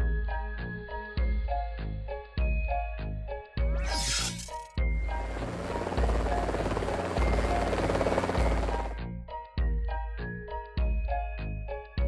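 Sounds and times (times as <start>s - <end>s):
propeller aircraft engine drone: 5.0s - 9.1s.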